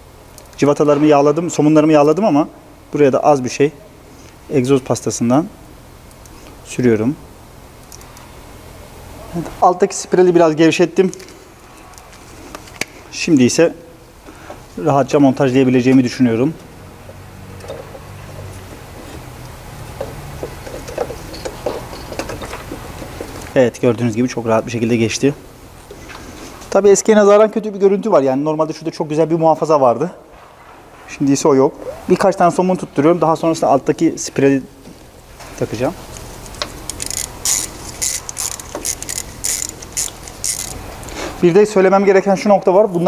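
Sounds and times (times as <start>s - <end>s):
steady low hum: 0.0s - 43.0s
ratchet wrench clicking: 36.6s - 40.8s.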